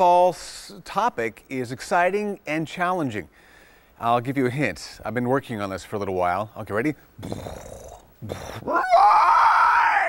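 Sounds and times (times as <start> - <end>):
man imitating dinosaur roar: 7.2 - 9.0.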